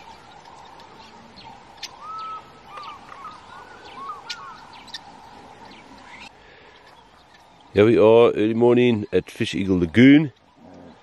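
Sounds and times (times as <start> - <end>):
wild birds chirping and whistling: 0.0 - 11.0.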